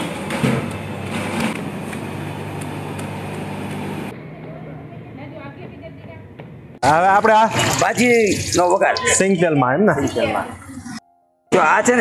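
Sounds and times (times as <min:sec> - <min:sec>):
low mechanical hum: 0:00.0 - 0:05.2.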